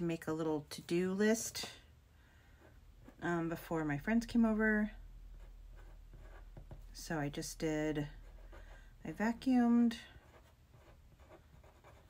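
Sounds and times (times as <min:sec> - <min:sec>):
pen scratching on paper: 0:05.4 - 0:06.7, 0:08.0 - 0:08.8, 0:10.0 - 0:12.0.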